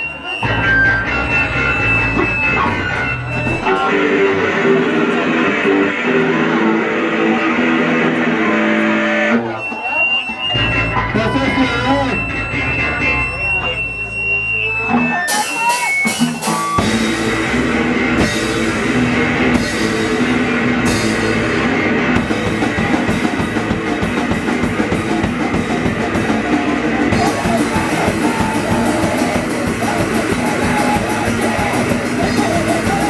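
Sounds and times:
distorted electric guitar: 0:00.0 - 0:33.0
hardcore punk band playing: 0:00.0 - 0:33.0
drums crashing: 0:00.4 - 0:05.8, 0:09.8 - 0:33.0.

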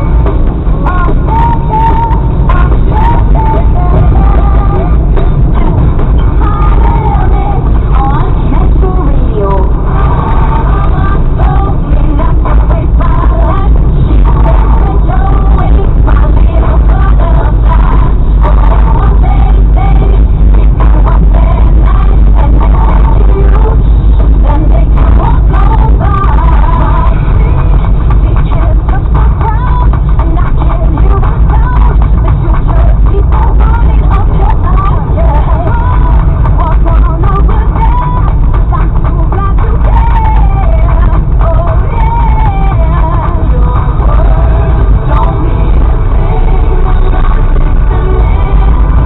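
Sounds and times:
car engine rumble: 0:00.0 - 0:49.0
car radio voice over music: 0:00.0 - 0:49.0
voice from car radio: 0:08.0 - 0:11.1.

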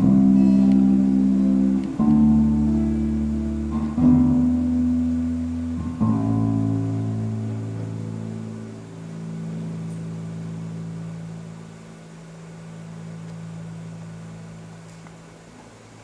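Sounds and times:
guitar ensemble chord ringing: 0:00.0 - 0:14.8.

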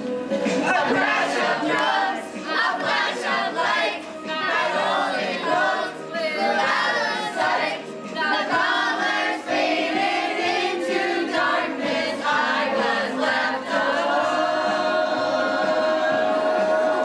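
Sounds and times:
female chorus singing: 0:00.4 - 0:17.0.

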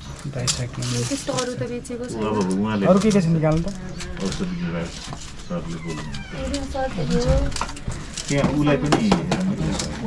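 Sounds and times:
people talking indistinctly: 0:00.2 - 0:10.0.

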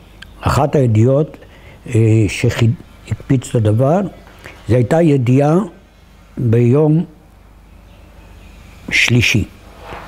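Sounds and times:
man speaking: 0:00.4 - 0:05.8, 0:06.4 - 0:07.2, 0:08.9 - 0:09.6.

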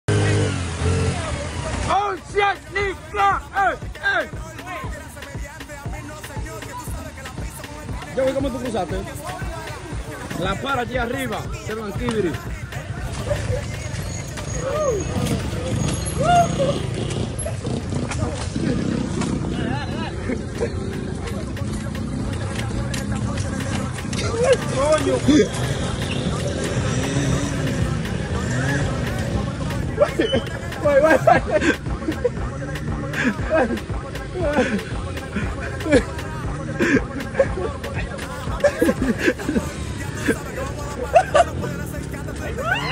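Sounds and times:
small motorcycle engine revving: 0:00.1 - 0:01.9, 0:14.6 - 0:19.9, 0:25.1 - 0:29.8
small motorcycle engines running: 0:00.1 - 0:02.7, 0:11.8 - 0:37.3
people calling out: 0:00.2 - 0:42.9.

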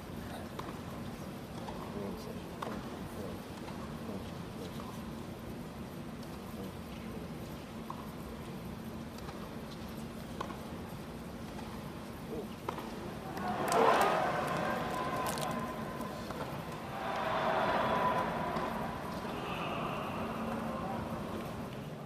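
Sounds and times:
crowd murmur: 0:13.0 - 0:22.0
crowd cheering and applauding: 0:13.2 - 0:21.9.

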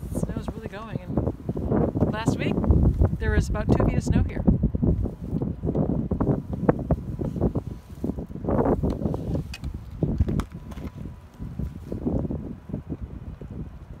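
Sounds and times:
gusty wind buffeting microphone: 0:00.0 - 0:14.0.

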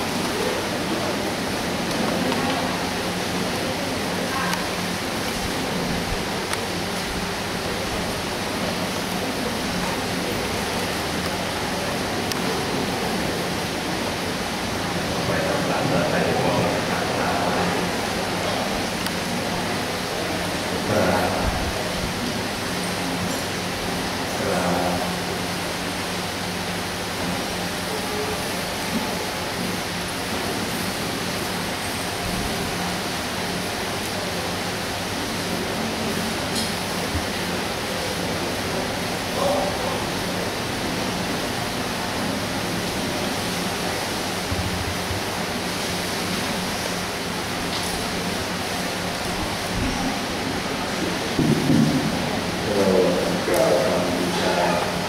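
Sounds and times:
faint voices: 0:00.0 - 0:45.4, 0:48.6 - 0:55.0
low electrical hum: 0:00.0 - 0:55.0.

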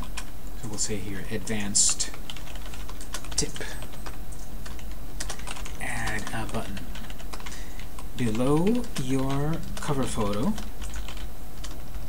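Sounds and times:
steady low hum: 0:00.0 - 0:12.0
typing on computer keyboard: 0:02.0 - 0:12.0.

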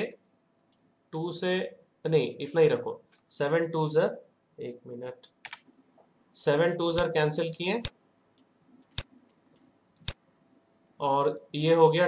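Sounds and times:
man speaking: 0:00.0 - 0:00.2, 0:01.2 - 0:05.3, 0:06.3 - 0:07.9, 0:11.0 - 0:12.0
computer mouse clicks: 0:05.4 - 0:05.7, 0:07.8 - 0:10.2.

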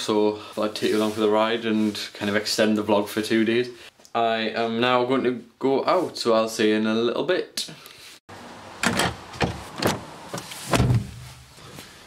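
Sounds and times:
car door shutting: 0:08.8 - 0:11.2.

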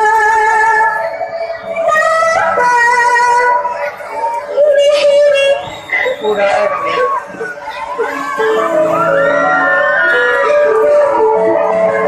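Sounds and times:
song music: 0:00.0 - 0:12.0.

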